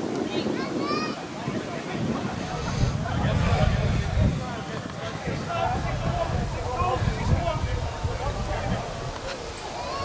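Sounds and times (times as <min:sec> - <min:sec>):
voices calling and talking: 0:00.0 - 0:10.0
wind rumble on microphone: 0:00.0 - 0:10.0.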